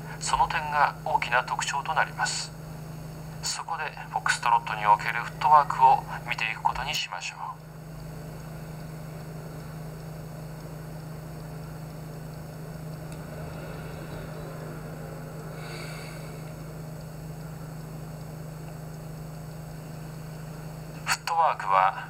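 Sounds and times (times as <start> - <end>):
steady low hum: 0.0 - 22.0
hiss: 13.1 - 17.1.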